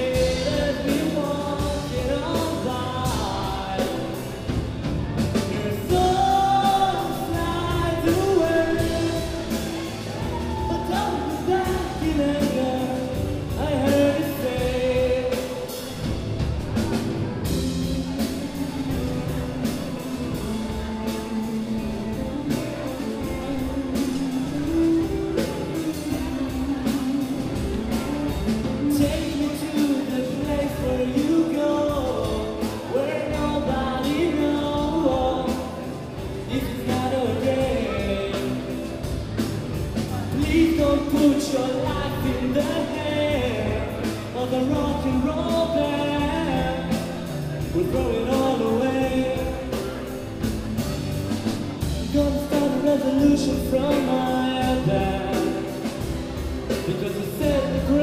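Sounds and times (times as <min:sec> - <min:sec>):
drum kit hits: 0:00.0 - 0:58.0
rock band playing: 0:00.0 - 0:58.0.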